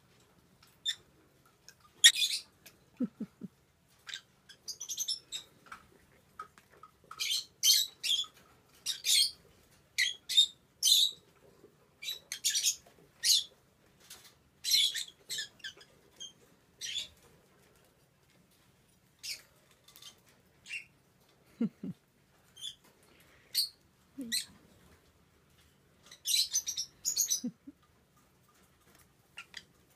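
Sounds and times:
lovebird chirping: 2.0s - 3.2s, 26.1s - 27.7s.

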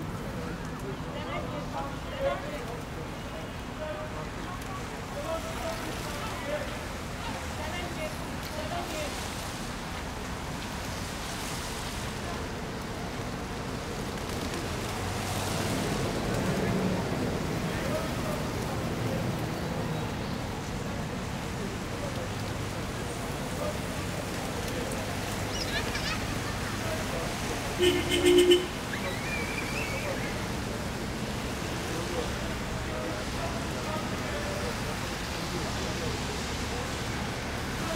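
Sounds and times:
distant traffic on wet streets: 0.0s - 37.9s
rainy city background noise: 0.0s - 37.9s
loud two-tone horn: 27.8s - 28.8s.

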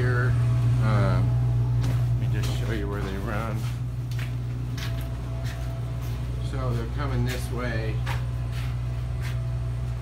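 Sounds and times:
heating equipment humming: 0.0s - 10.0s.

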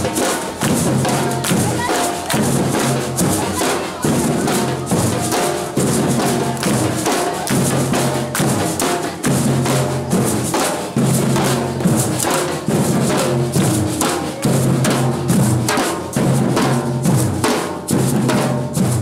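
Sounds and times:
drum-led music: 0.0s - 19.0s.

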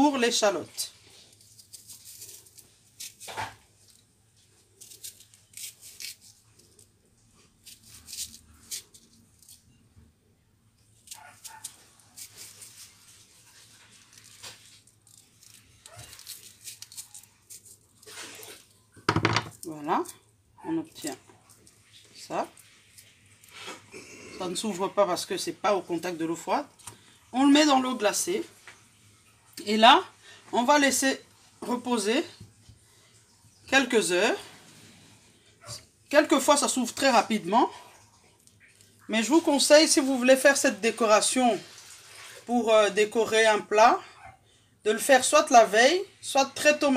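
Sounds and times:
knife crunching through shallot: 1.4s - 3.6s, 4.8s - 6.8s, 7.6s - 9.6s, 11.0s - 13.1s, 14.1s - 18.7s.

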